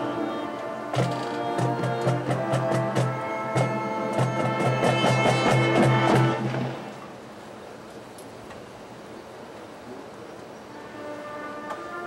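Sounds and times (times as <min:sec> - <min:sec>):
loud brass chord: 0:00.0 - 0:06.9, 0:10.8 - 0:12.0
soft held wind and brass tones: 0:00.0 - 0:07.0, 0:10.6 - 0:12.0.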